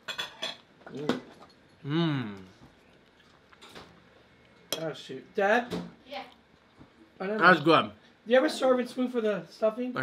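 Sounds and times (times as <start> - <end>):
cutlery clinking on a plate: 0.0 - 1.8
person saying mmm: 1.8 - 2.5.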